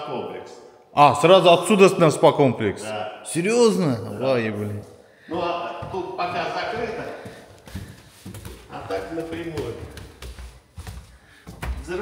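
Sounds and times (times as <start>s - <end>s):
footsteps on stairs: 5.3s - 12.0s.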